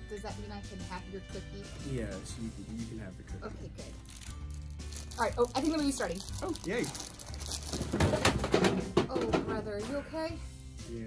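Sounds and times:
plastic wrapper crinkling: 3.9s - 8.4s.

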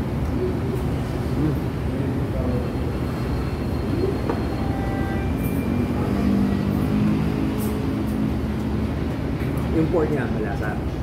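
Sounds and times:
restaurant room rumble: 0.0s - 11.0s.

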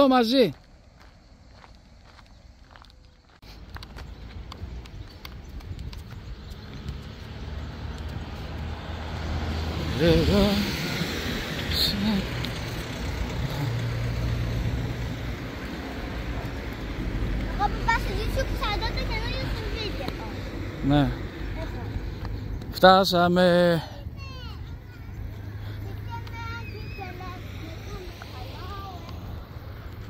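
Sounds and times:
road traffic: 0.0s - 30.0s
footsteps on gravel: 0.2s - 8.7s
child calling out: 26.0s - 29.1s.

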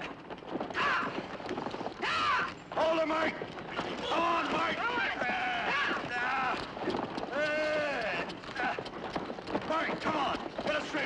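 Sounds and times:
horse hooves on dirt: 0.0s - 11.0s.

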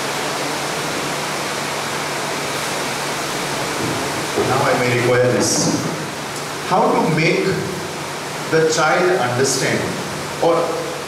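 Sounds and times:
ceiling fans humming: 0.0s - 11.0s
room noise hiss: 0.0s - 11.0s.

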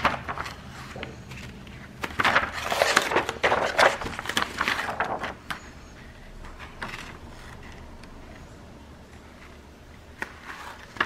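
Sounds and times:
plastic sheet crinkling: 0.0s - 5.7s.

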